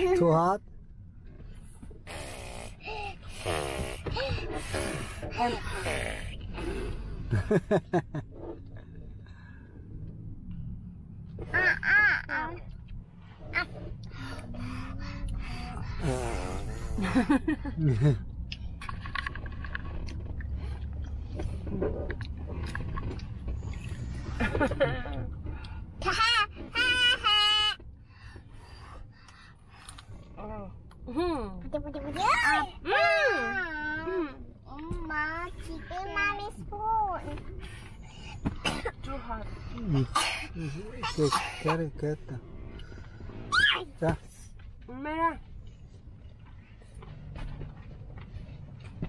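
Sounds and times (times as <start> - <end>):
low hum inside car: 0.0 - 49.0
laughter: 7.3 - 8.2, 17.0 - 18.2, 24.4 - 25.3.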